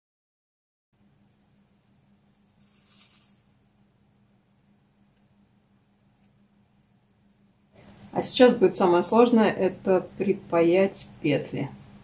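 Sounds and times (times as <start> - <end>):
faint steady hum: 1.0 - 12.0.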